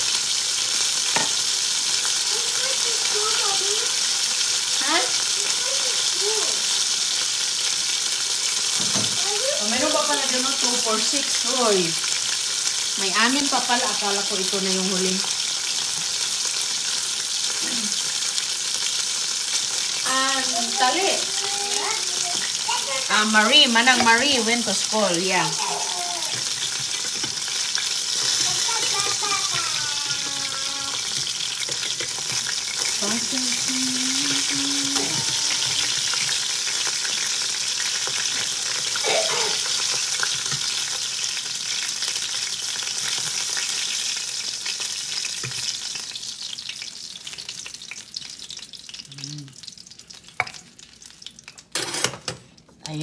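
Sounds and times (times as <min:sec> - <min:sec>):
spring rolls sizzling in oil: 0:00.0 - 0:51.7
metal tongs on pan: 0:31.0 - 0:37.2, 0:51.5 - 0:53.0.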